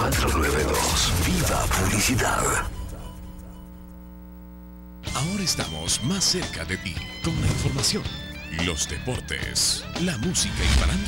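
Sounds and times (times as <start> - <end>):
electrical mains hum: 0.0 - 7.1.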